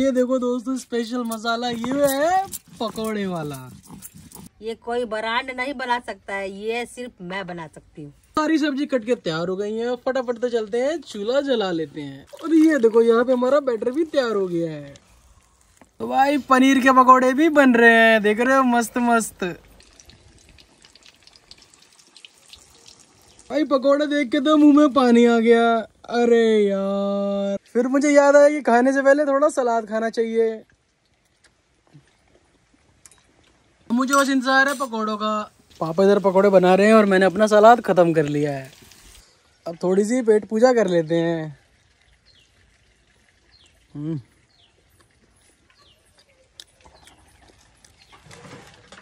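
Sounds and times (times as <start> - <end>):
batter frying in hot oil: 12.9 - 25.5, 32.4 - 45.8.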